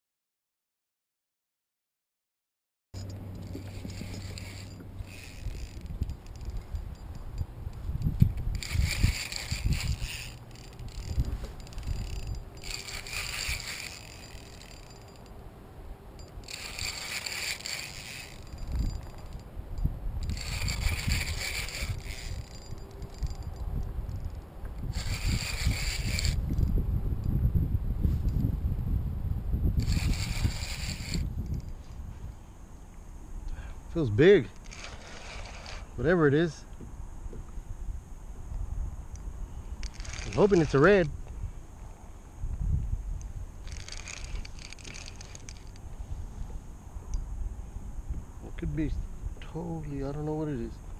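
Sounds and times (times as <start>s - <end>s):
wind rumble on microphone: 3.0s - 15.3s, 16.2s - 50.9s
fishing reel buzzing: 3.0s - 15.4s, 16.2s - 26.8s, 29.7s - 32.0s, 34.2s - 36.2s, 39.1s - 41.1s, 43.1s - 46.0s.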